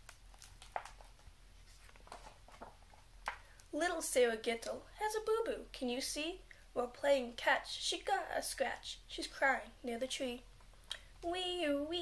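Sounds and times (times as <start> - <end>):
paper rustles: 0.0 - 3.6.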